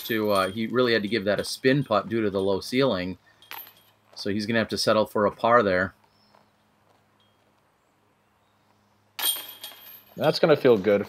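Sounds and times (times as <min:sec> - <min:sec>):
disc hitting metal chains: 0:00.0 - 0:01.6, 0:03.4 - 0:04.1, 0:09.2 - 0:10.3.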